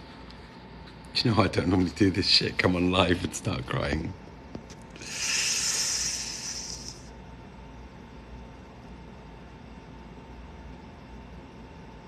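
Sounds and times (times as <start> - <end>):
man's long breath: 5.0 - 7.1.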